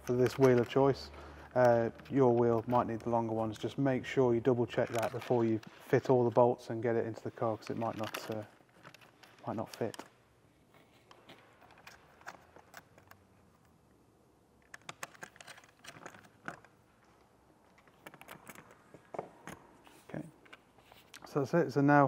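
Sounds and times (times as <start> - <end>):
allen key metallic clicks: 14.6 - 16.8.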